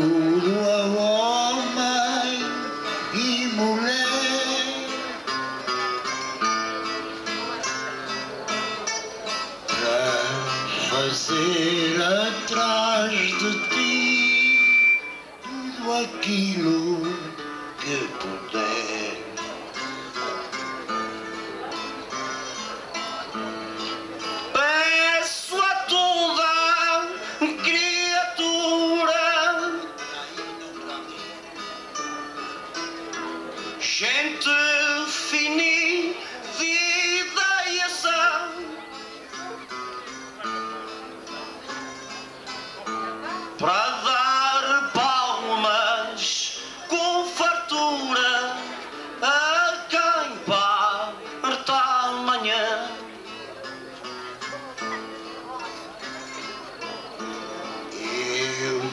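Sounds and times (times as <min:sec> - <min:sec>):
man singing into a microphone: 0:00.0 - 0:05.4, 0:09.7 - 0:19.6, 0:24.5 - 0:31.3, 0:33.2 - 0:39.0, 0:42.9 - 0:53.4, 0:57.4 - 0:58.9
guitars: 0:00.0 - 0:58.9
plucked string instruments: 0:00.0 - 0:58.9.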